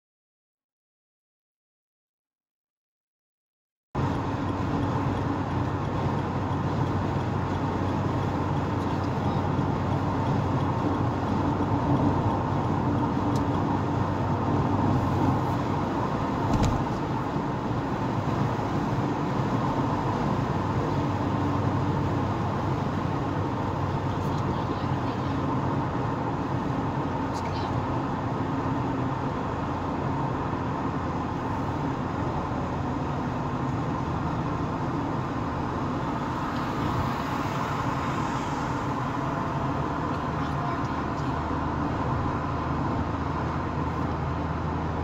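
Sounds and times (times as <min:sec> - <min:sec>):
car engine and tyre drone: 0:04.0 - 0:45.0.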